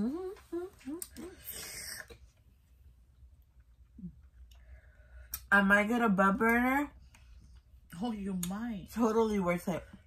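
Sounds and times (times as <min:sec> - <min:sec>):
person humming: 0:00.0 - 0:02.1.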